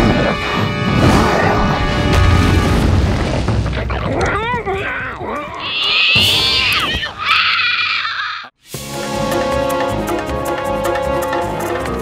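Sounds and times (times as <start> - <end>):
cartoon creature screeching: 4.7 - 8.5.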